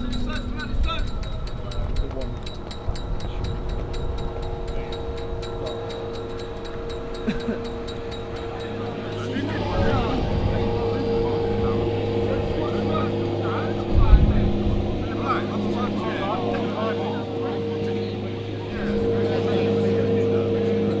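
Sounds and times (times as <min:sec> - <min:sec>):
faint voices: 0:00.0 - 0:21.0
motor-like drone: 0:00.0 - 0:21.0.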